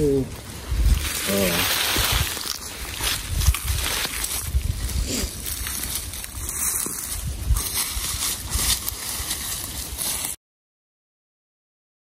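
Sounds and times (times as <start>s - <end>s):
footsteps crunching dry leaves: 0.2s - 10.4s.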